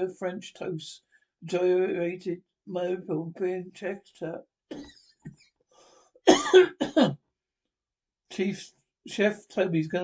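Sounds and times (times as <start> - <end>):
person coughing: 4.7 - 5.1, 6.3 - 7.2.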